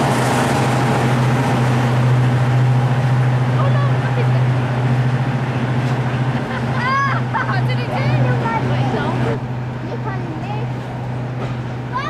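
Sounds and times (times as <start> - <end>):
diesel locomotive engine drone: 0.0 - 12.0.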